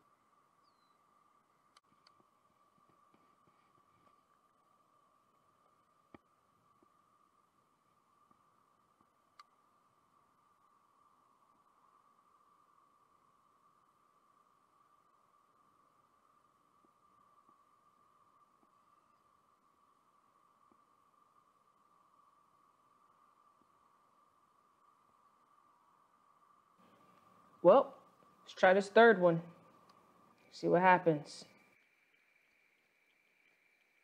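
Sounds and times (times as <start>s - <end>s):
faint steady high tone: 0.0s - 34.0s.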